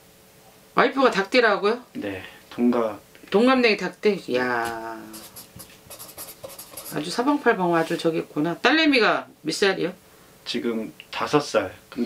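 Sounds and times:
pen scratching on paper: 5.1s - 7.2s.

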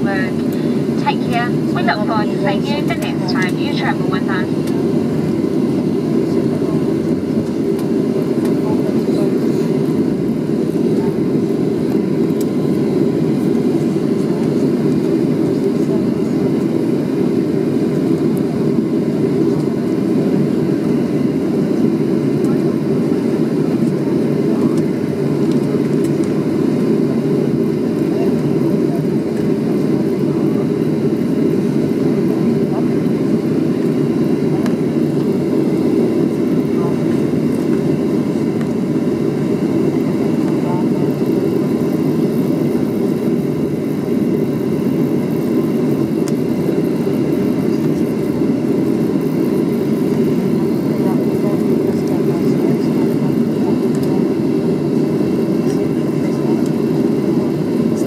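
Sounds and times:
airplane cabin engine rumble: 0.0s - 58.0s.

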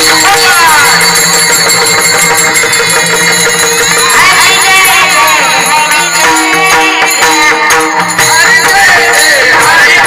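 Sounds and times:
small hand cymbals ringing: 0.0s - 10.0s
steady held tones: 0.0s - 10.0s.

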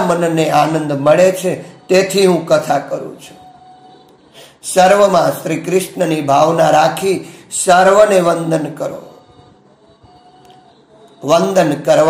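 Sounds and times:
man speaking: 0.0s - 3.4s, 4.6s - 9.2s, 11.2s - 12.0s.

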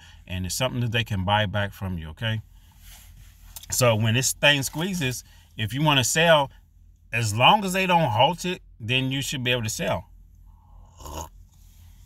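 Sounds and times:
low steady hum: 0.0s - 12.0s
person slurping coffee: 10.9s - 11.4s.

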